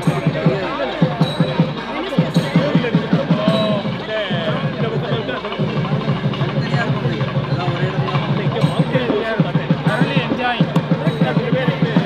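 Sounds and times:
drum struck in fast low strokes: 0.0s - 12.0s
people talking: 0.0s - 12.0s.

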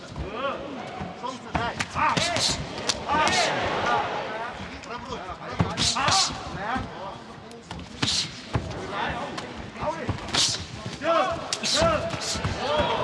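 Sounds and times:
men shouting: 1.9s - 4.7s, 11.0s - 13.0s
sharp hissing breaths: 8.0s - 8.5s.

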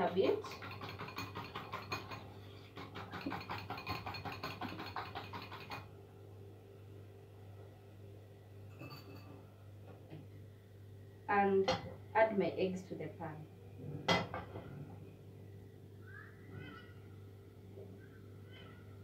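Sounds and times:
whisk clicking against bowl: 0.3s - 5.9s.

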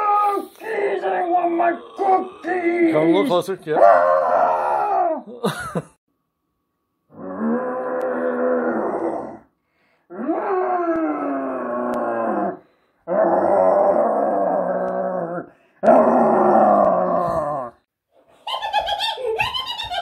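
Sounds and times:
monster groans: 1.6s - 3.1s, 10.4s - 17.8s.

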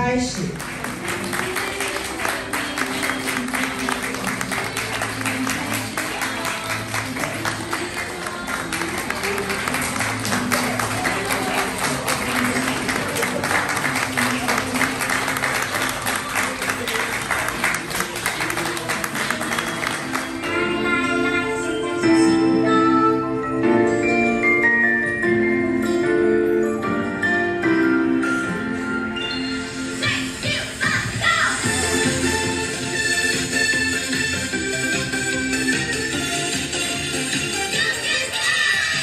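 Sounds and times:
music: 0.0s - 39.0s
audience clapping: 0.4s - 20.6s.

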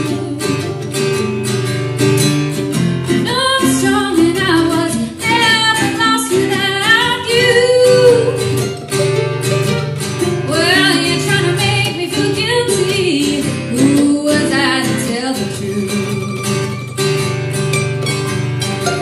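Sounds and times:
woman singing: 0.0s - 1.3s, 3.1s - 8.8s, 10.3s - 16.9s
acoustic guitar: 0.0s - 19.0s
mandolin: 0.0s - 19.0s.

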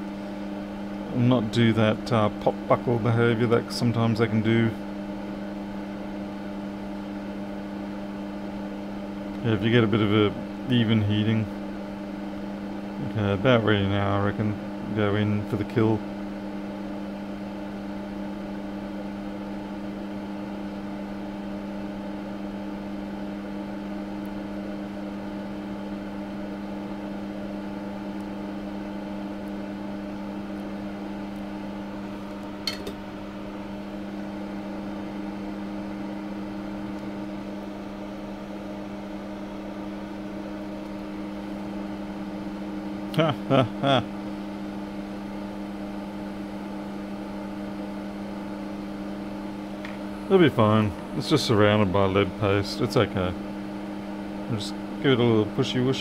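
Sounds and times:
hot air station blowing: 0.0s - 21.6s, 24.5s - 56.0s.

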